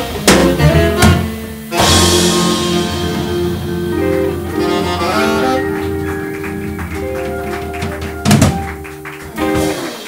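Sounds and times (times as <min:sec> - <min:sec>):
upright bass: 0:00.0 - 0:09.8
electric guitar chord: 0:01.7 - 0:09.9.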